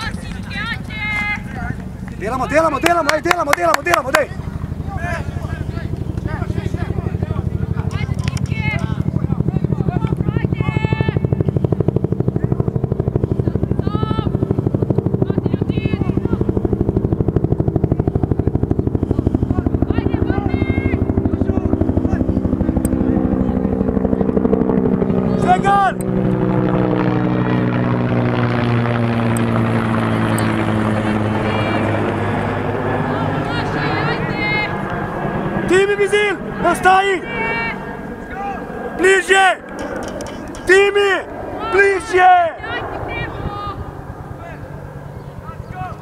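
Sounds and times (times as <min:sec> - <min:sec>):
helicopter flying over: 0:00.0 - 0:46.0.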